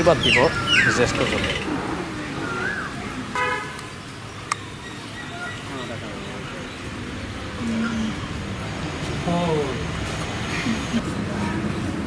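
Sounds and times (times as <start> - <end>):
vehicle horn toot: 3.3 - 3.8.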